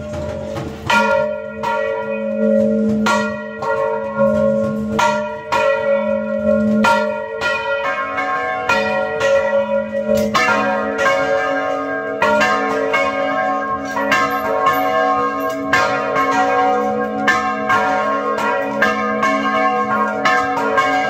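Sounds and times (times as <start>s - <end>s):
large church bells ringing: 0.0s - 21.0s.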